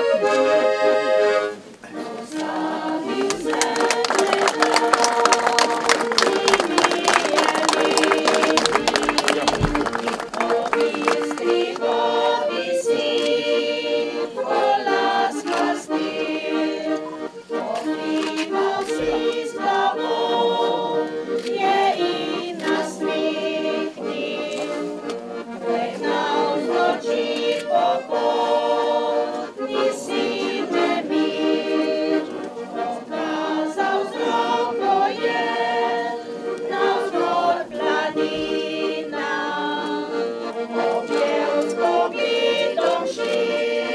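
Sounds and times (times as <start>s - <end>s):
choir singing held chords: 0.0s - 43.9s.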